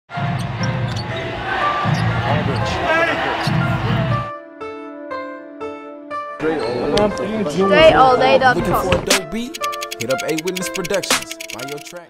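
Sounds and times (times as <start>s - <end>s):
crowd noise: 0.1s - 4.3s, 6.4s - 11.9s
sneaker squeaks: 1.8s - 2.7s.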